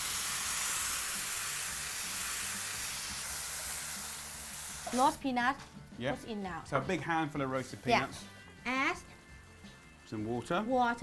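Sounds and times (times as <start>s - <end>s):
food sizzling in a wok: 0.0s - 5.9s, 7.0s - 11.0s.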